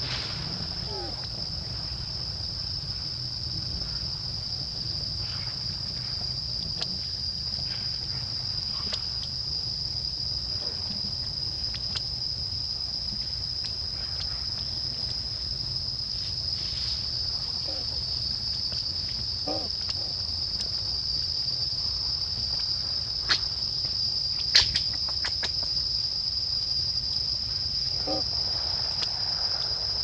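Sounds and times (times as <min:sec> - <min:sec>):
low background rumble: 0:00.0 - 0:24.3.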